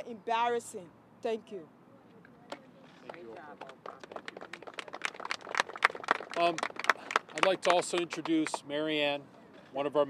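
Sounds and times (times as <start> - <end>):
people clapping quickly: 3.0 - 8.6.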